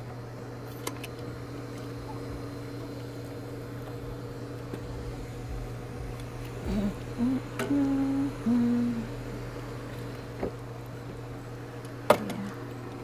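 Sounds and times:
motor humming: 0.0 - 13.0.

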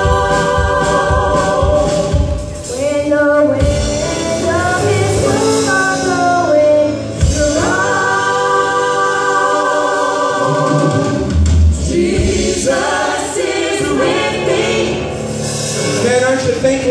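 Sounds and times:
voices singing in harmony: 0.0 - 16.9.

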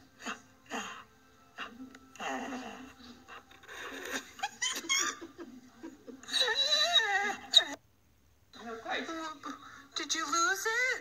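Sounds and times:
person laughing and giggling: 4.0 - 6.4.

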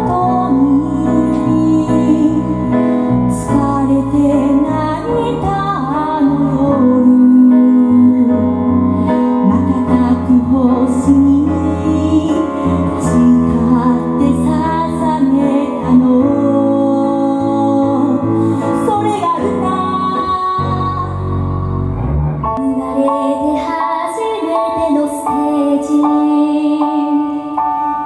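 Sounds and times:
women singing pop ballad: 0.0 - 21.3, 22.6 - 28.0
guitar: 0.0 - 28.0.

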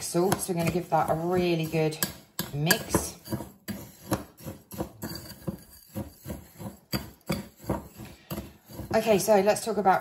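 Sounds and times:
salts stirred in glass bowl: 0.0 - 10.0.

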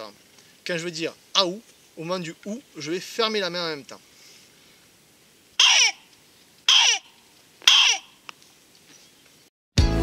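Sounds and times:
fox call yelps: 5.6 - 6.1, 6.7 - 8.2.

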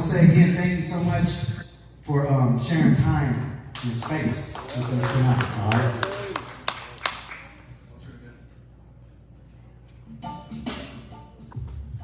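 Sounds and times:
hand claps: 3.8 - 7.6.

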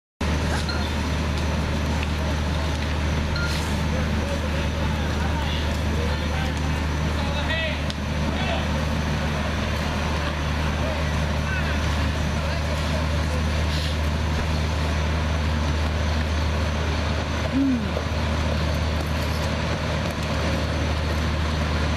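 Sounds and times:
fire truck engine humming: 0.2 - 21.9
faint voices: 0.3 - 18.7.

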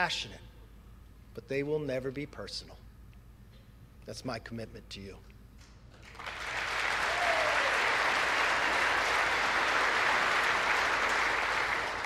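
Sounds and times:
crowd applauding: 6.0 - 12.0.

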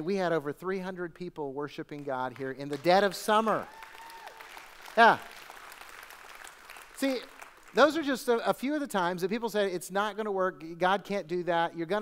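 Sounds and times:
congregation clapping: 1.9 - 8.5.

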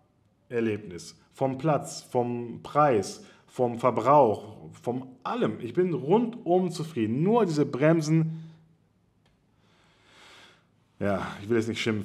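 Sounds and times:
faint breath: 3.2 - 3.5, 9.5 - 10.9.

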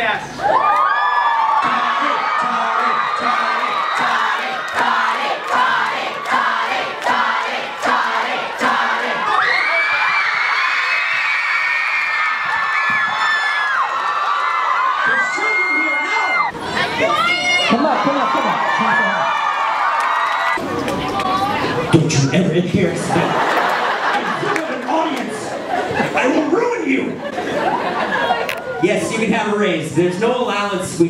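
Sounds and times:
audience cheering and screaming: 0.4 - 21.8
people clapping: 0.6 - 8.8, 9.7 - 15.1, 17.8 - 21.4, 23.4 - 25.3.

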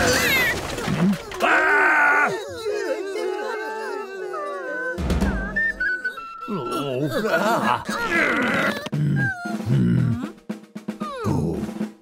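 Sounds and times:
cartoon voices groaning and whimpering: 0.0 - 10.4, 11.0 - 11.9
cartoon character strained cry: 1.3 - 5.0, 6.4 - 10.3.

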